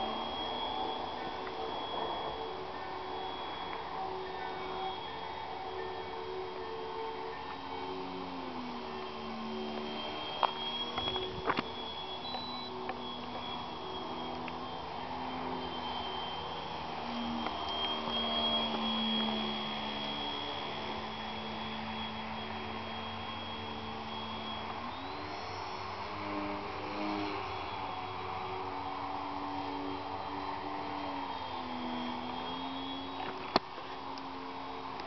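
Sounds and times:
model plane motor and propeller: 0.0s - 35.0s.

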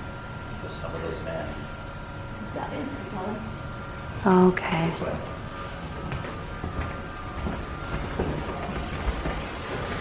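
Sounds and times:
footsteps on stairs: 5.8s - 10.0s.

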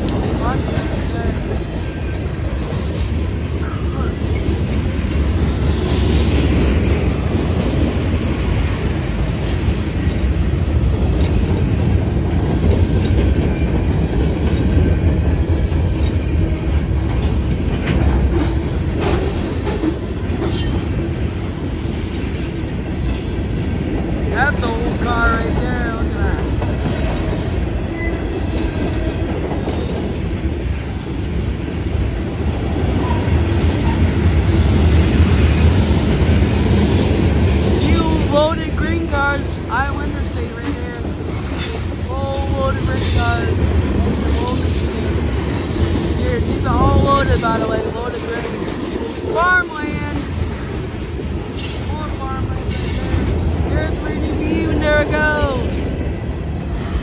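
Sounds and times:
freight train rumbling past: 0.0s - 57.0s
wheels clacking over rail joints: 0.0s - 57.0s.

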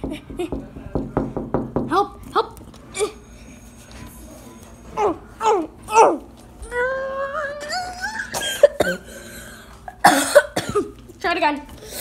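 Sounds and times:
child coughing: 8.3s - 9.1s, 10.0s - 11.0s.

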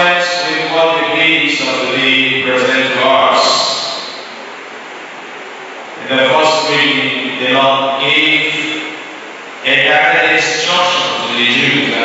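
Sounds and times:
sound system hiss: 0.0s - 12.0s.

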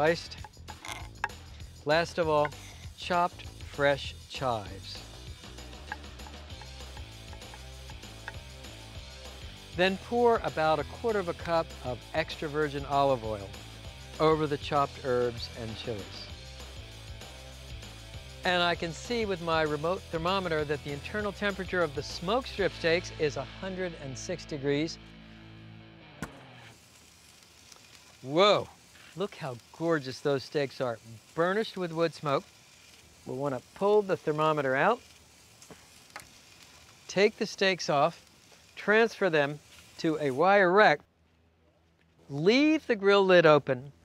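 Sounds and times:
faint hiss: 0.0s - 25.0s, 26.4s - 44.0s
background music: 0.0s - 26.8s.

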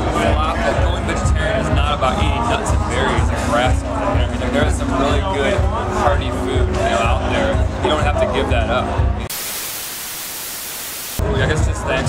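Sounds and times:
television static hiss: 9.3s - 11.2s.

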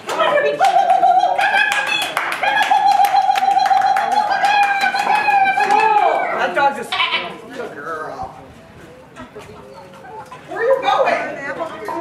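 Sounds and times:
high-pitched voices calling out: 0.0s - 7.4s.

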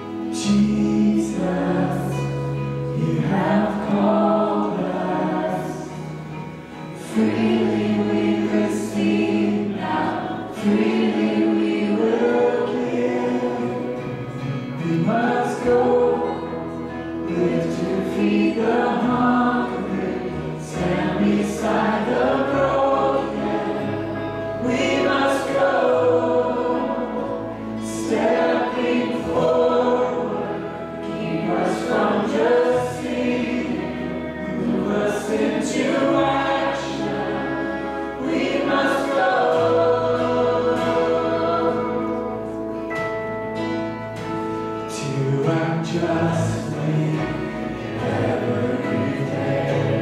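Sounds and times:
held bass notes: 0.0s - 50.0s
worship band playing slow song: 0.0s - 50.0s.

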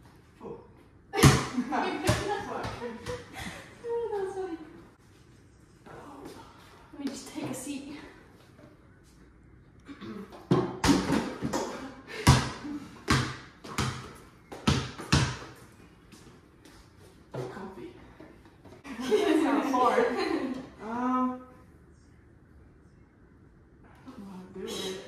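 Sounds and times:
ball bouncing on wooden floor: 1.2s - 3.3s, 10.3s - 15.6s.

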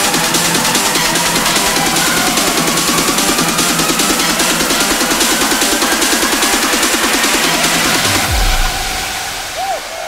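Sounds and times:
fast rolling synth line: 0.0s - 9.5s
deep bass hit sweeping down: 7.7s - 10.0s.

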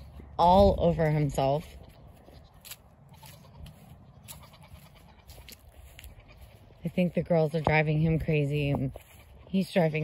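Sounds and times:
wind rumble on microphone: 0.0s - 2.4s
footsteps on grass: 0.0s - 10.0s.

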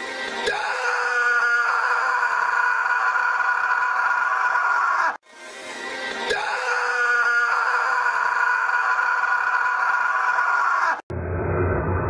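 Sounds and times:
boy screaming: 0.5s - 5.2s, 6.4s - 11.0s.

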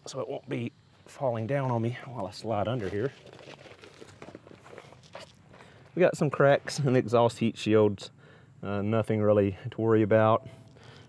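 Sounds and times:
scuffs and rustles on gravel: 1.1s - 7.2s.

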